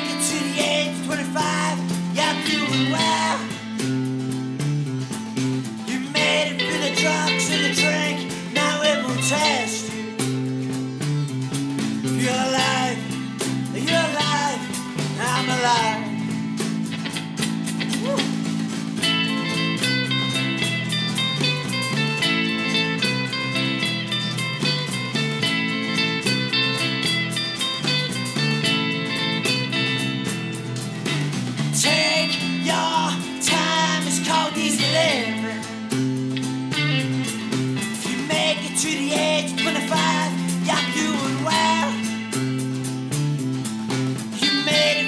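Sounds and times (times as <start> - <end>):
bass line: 0.0 - 45.0
strummed guitars: 0.0 - 45.0.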